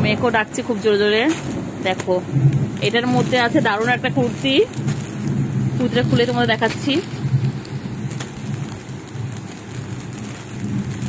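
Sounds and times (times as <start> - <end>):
heavy rain falling: 0.0 - 11.0
low thunder rumble: 0.0 - 11.0.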